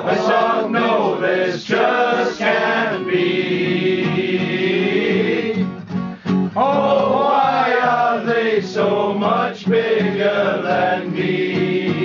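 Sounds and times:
men singing together: 0.0 - 5.7, 6.6 - 12.0
strummed acoustic guitar: 0.0 - 12.0.

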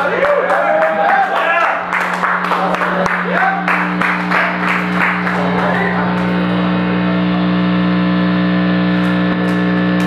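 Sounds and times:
electric guitar drone: 0.0 - 10.0.

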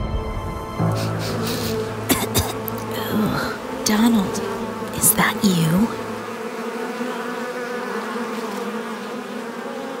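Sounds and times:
insects buzzing: 0.8 - 10.0.

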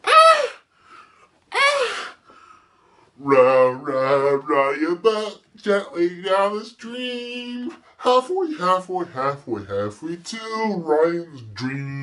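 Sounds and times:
man giving high-pitched cries: 0.0 - 0.7, 1.5 - 2.1, 3.2 - 5.4, 6.0 - 12.0.

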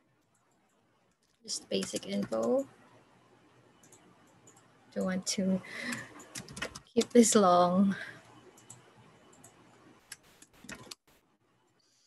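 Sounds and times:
keyboard typing: 1.7 - 2.6, 3.8 - 5.2, 5.8 - 7.2, 8.4 - 11.2.

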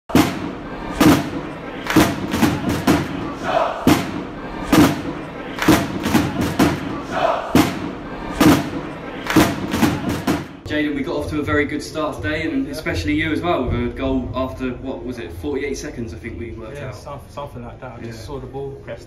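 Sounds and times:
stomping drum beat: 0.0 - 10.7
crowd shout sample: 0.1 - 10.6.

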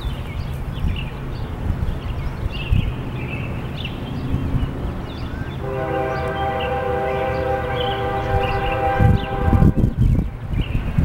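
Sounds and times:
wind buffeting microphone: 0.0 - 11.0
locomotive air horn blast: 5.6 - 10.0.

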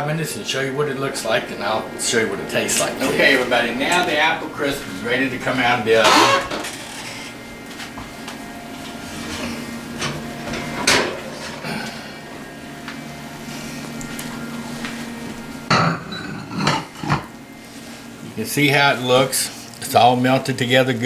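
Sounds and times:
steady hum: 0.0 - 21.0.

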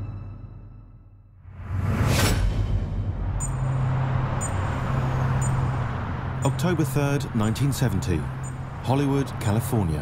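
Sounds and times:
city traffic rumble: 1.6 - 10.0
high clock ticks: 3.4 - 3.7, 4.4 - 4.7, 5.4 - 5.6.

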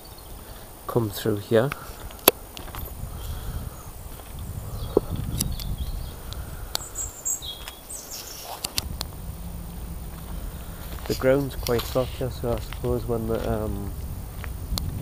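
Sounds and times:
wind buffeting microphone: 0.0 - 15.0
footsteps on twigs and leaves: 1.8 - 3.4, 4.0 - 5.8, 7.2 - 15.0.

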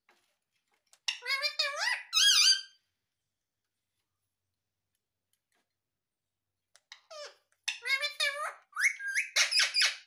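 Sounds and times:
parrot squeaking: 1.1 - 2.8, 7.0 - 10.0
parrot chattering: 7.0 - 10.0.

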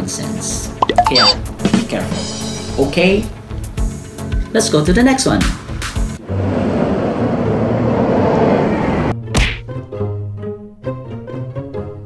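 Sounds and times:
sharp whip-crack hit: 9.3 - 9.6.

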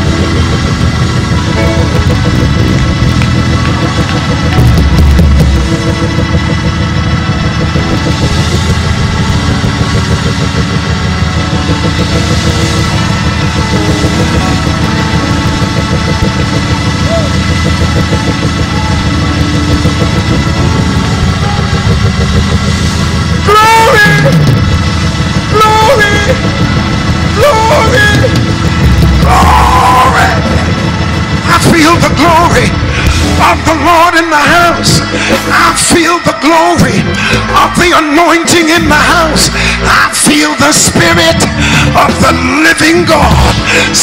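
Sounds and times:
live church band music: 0.0 - 44.0.

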